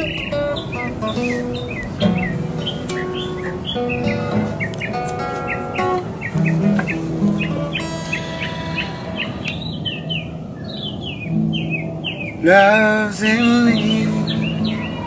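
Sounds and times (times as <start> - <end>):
acoustic guitar ringing notes: 0.0 - 15.0
bird chirping: 0.0 - 15.0.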